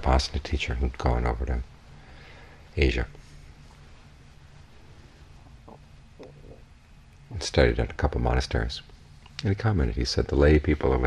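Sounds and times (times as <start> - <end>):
steady low hum: 0.0 - 11.0
faint soft clicks: 9.2 - 9.5.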